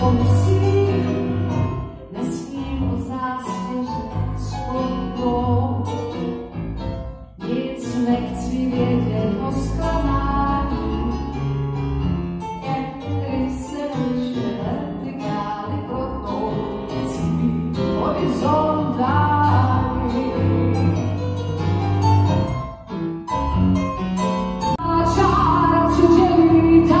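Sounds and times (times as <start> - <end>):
woman singing into a microphone: 0.0 - 1.4, 2.1 - 5.9, 7.4 - 11.3, 12.6 - 21.0, 24.8 - 27.0
keyboard piano accompaniment: 0.0 - 27.0.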